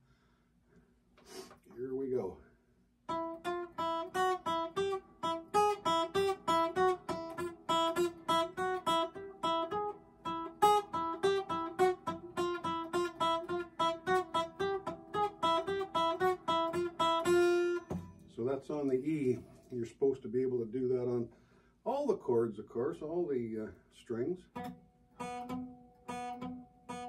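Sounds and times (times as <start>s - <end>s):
acoustic guitar single plucked notes: 3.1s - 18.5s, 24.5s - 27.0s.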